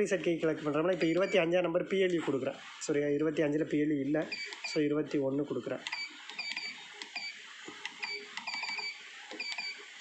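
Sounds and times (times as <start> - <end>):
short high keypad beeps: 8.0 - 9.8.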